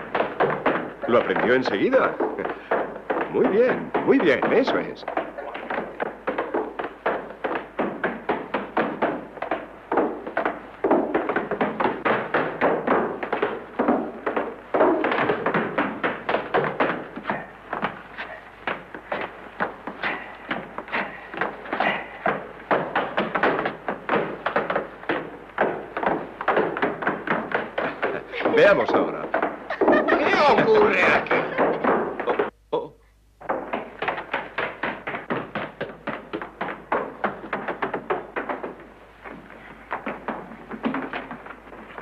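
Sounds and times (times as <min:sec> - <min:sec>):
tap shoes on wooden stairs: 0:00.0 - 0:32.5, 0:33.4 - 0:42.0.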